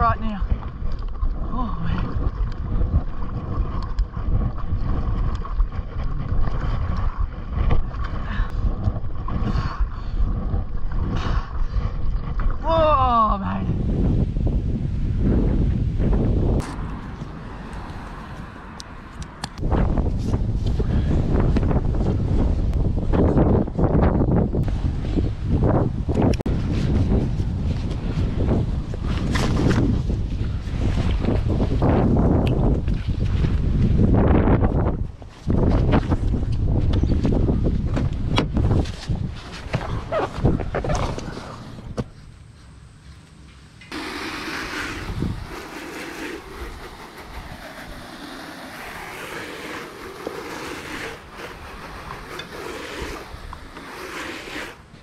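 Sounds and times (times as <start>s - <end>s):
wind buffeting microphone: 0.0s - 42.2s, 43.9s - 55.0s.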